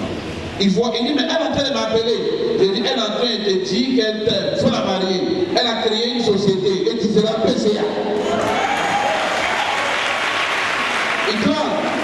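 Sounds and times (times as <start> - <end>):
congregation applauding: 8.3 - 12.0.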